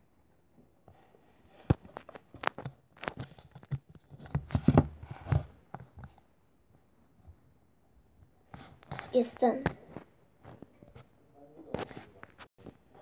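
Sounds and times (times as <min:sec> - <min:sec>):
tablet handling taps and knocks: 0:01.6 - 0:06.2.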